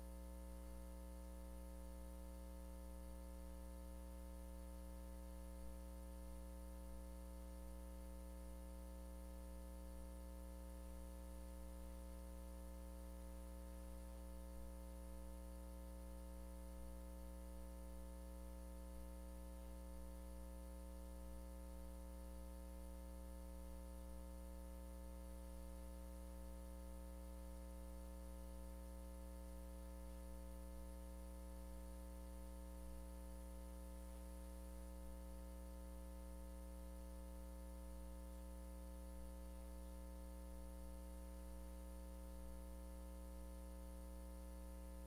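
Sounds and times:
electrical mains hum: 0.0 - 45.0.

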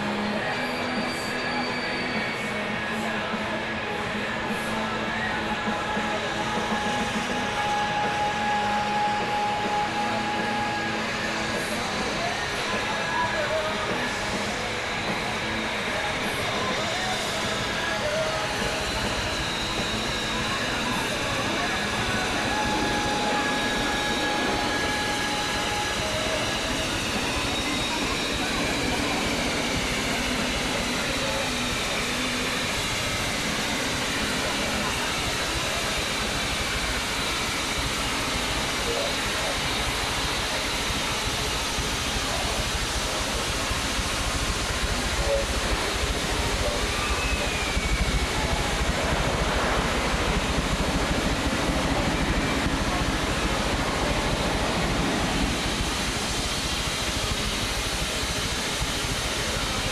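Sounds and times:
people's voices: 0.0 - 59.9.

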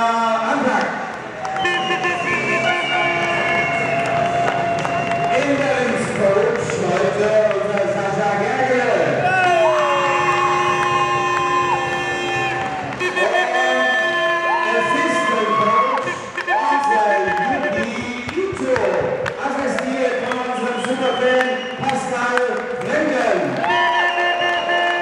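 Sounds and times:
crowd cheering: 0.8 - 8.1, 9.1 - 25.0.

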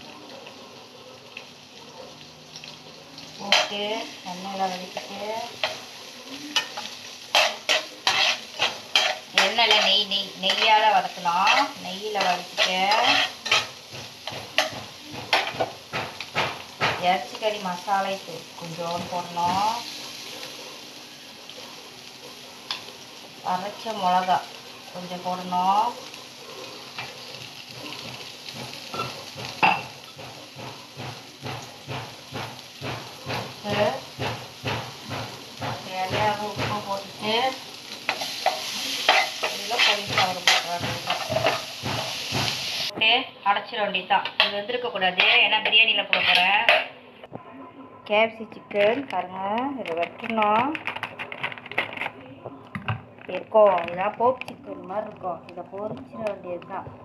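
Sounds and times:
food sizzling in oil: 0.0 - 47.2
spoon against pan: 6.6 - 17.0, 37.8 - 42.6, 45.2 - 47.0
person speaking: 53.3 - 57.0.

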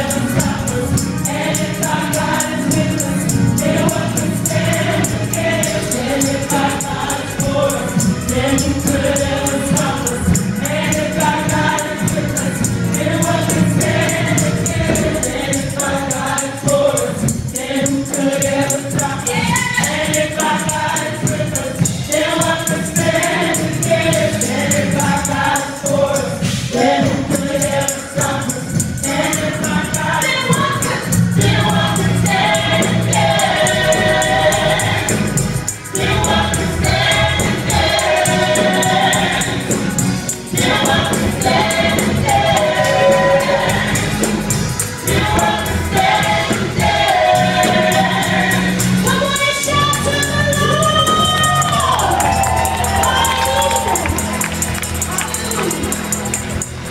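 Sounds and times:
amplified accompaniment with steady beat: 0.0 - 56.9
group singing gospel: 0.0 - 56.9.

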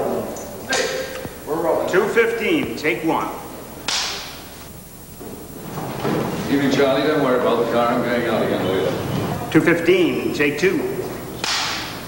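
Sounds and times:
clapperboard snapping shut: 11.4 - 12.0.

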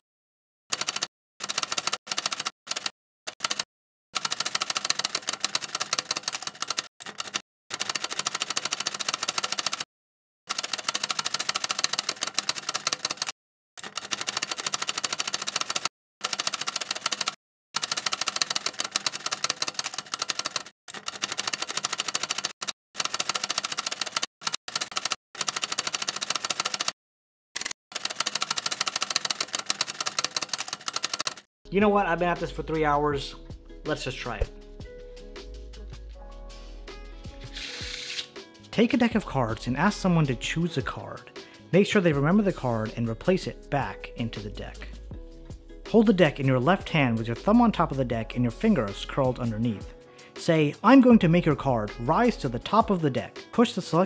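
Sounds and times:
typewriter keys clattering: 4.2 - 9.9, 10.5 - 27.0, 27.6 - 31.5.

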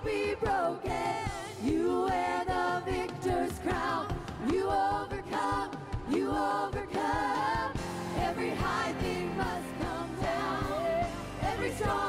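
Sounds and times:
backing singers: 0.0 - 12.0.

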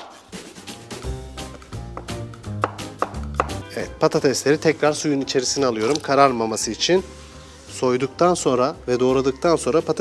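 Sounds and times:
background music: 0.0 - 10.0
knife chopping on wooden board: 1.5 - 3.7.

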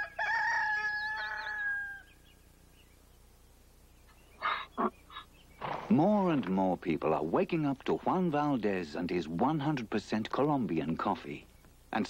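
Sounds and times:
rooster crowing: 0.0 - 2.2
horse snorting: 5.6 - 6.1.

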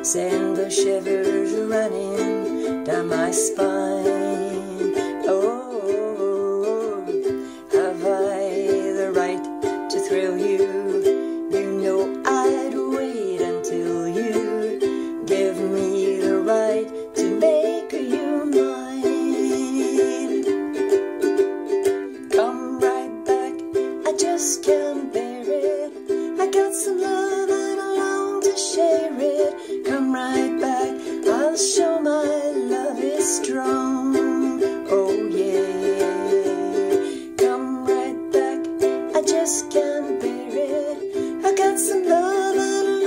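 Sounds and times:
ukulele strumming chords: 0.0 - 43.0.

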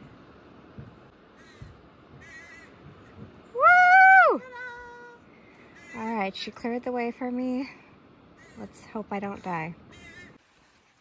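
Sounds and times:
soft low thumps: 0.0 - 3.5
bird calling faintly: 1.3 - 6.6.

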